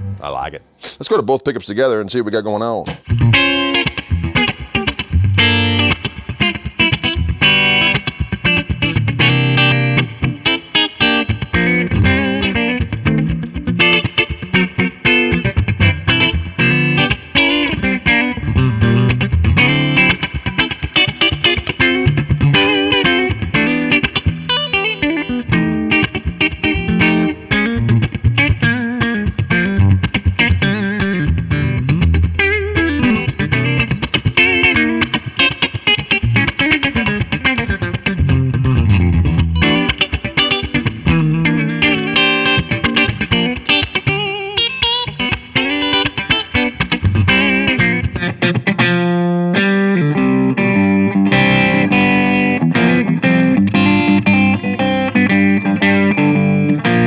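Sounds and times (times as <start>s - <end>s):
electric guitar through amplifier: 0.0s - 0.9s, 2.8s - 57.0s.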